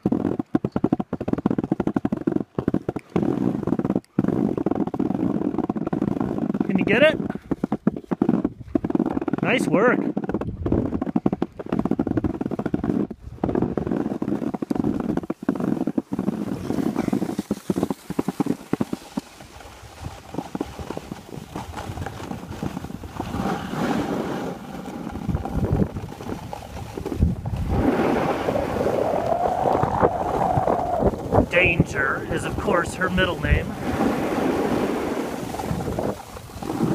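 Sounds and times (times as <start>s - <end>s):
skis scraping over snow: 0.0s - 36.9s
wind on microphone: 0.0s - 36.9s.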